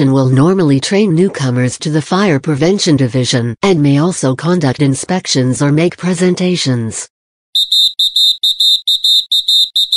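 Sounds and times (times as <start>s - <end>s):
rapid high-pitched electronic beeping: 7.6s - 9.9s.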